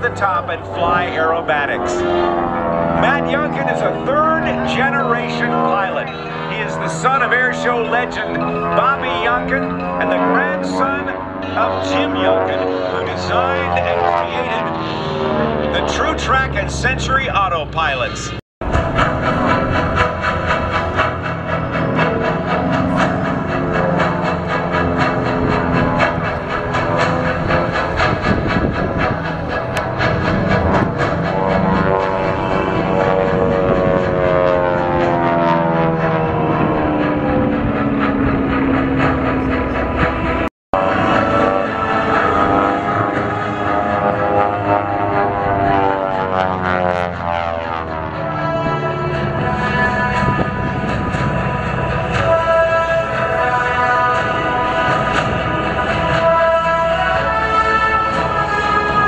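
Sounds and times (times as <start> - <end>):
propeller plane engines droning: 0.0 - 59.0.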